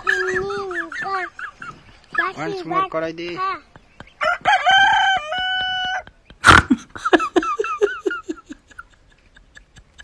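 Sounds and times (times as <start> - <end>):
rooster crowing: 4.2 - 6.1.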